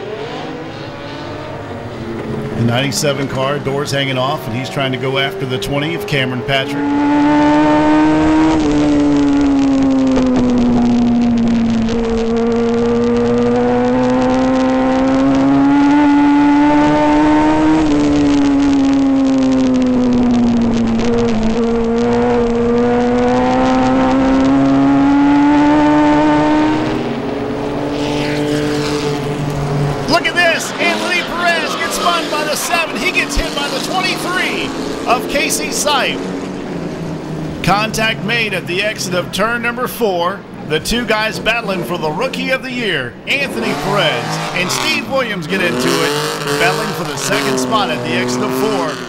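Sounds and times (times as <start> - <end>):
race car engine revving: 0.0 - 49.0
trackside sound: 0.0 - 49.0.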